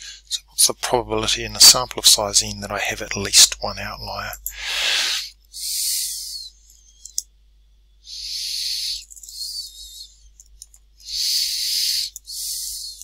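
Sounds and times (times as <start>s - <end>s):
close breathing with faint whistle: 4.6s - 7.1s, 11.1s - 13.0s.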